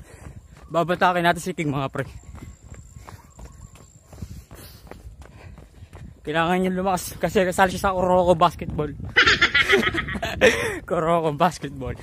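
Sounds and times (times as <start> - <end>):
jogging footsteps on pavement: 0.0 - 12.0.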